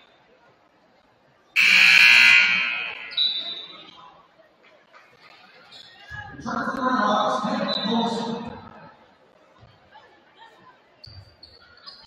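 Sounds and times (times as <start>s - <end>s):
scoreboard horn blaring: 1.6s - 3.5s.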